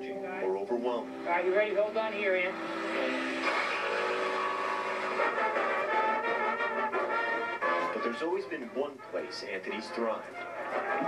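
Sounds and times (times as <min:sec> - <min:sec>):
shop vacuum running: 0:01.3 - 0:06.2
jigsaw cutting wood: 0:01.9 - 0:06.2.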